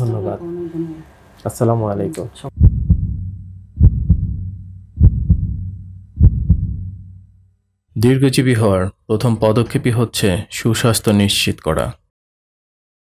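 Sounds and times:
heartbeat thumps: 2.6s - 7.3s.

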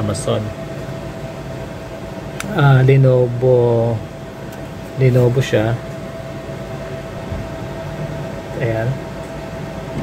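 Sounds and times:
air conditioner hissing: 0.0s - 10.0s
faint hum: 0.0s - 10.0s.

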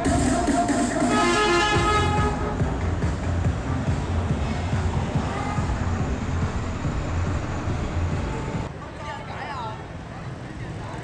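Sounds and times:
bus engine running: 0.0s - 8.7s
bus horn blast: 1.0s - 2.6s.

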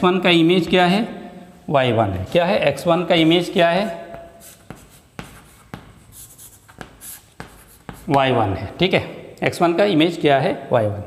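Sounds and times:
chalk scratching strokes: 3.2s - 8.2s
chalk tapping on chalkboard: 3.8s - 8.4s.

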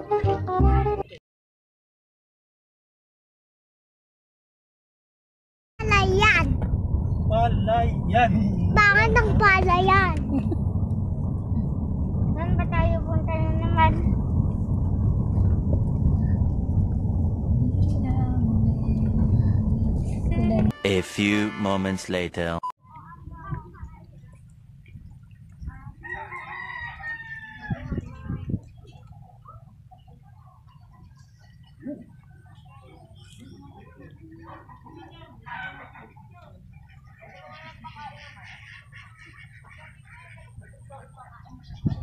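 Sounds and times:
vehicle rumble: 5.8s - 20.8s
rooster crowing: 26.0s - 27.9s.

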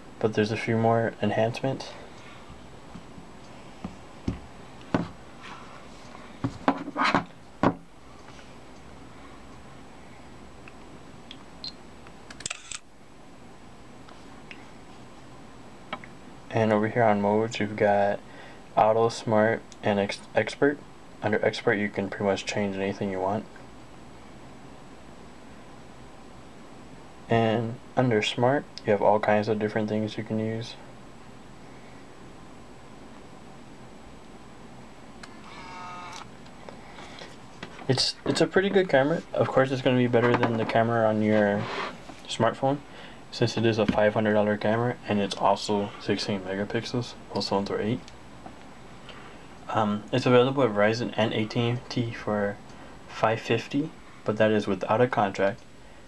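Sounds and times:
camera shutter clicks: 12.4s - 12.8s
short electronic tone: 35.4s - 36.2s.

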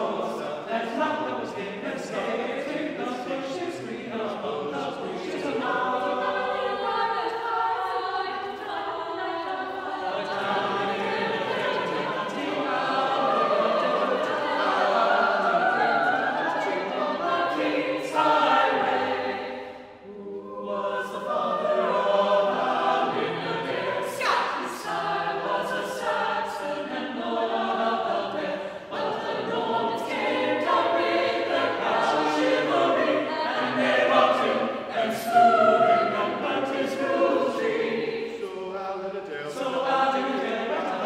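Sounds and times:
mixed choir singing a cappella: 0.0s - 41.0s.

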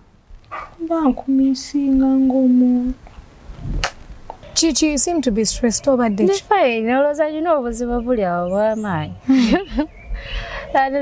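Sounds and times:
sharp click: 3.8s - 4.0s.

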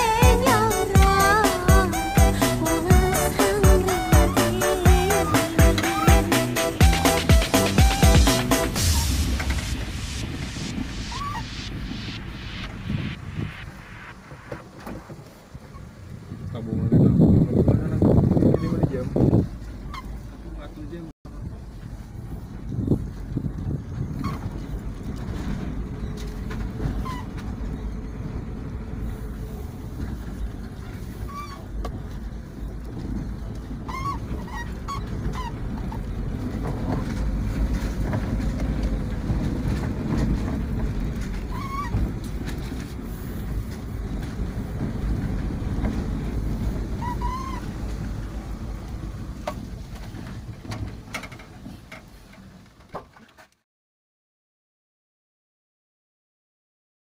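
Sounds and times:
car engine and road rumble: 0.0s - 53.6s.

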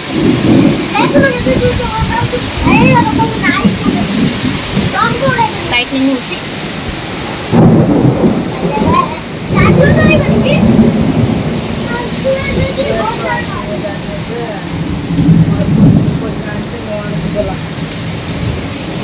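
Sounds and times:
gusty wind through trees: 0.0s - 19.0s
heavy rain: 0.0s - 19.0s
low rumbling: 0.0s - 19.0s.

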